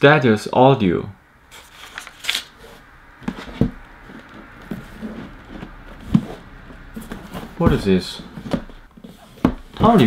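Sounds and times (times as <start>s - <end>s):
paper rustling: 1.5s - 10.0s.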